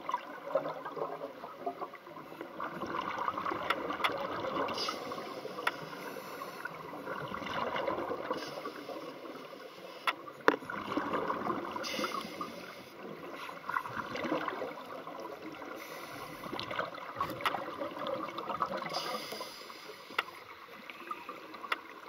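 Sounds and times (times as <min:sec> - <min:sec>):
underwater air bubbles gurgling: 0:00.0 - 0:22.0.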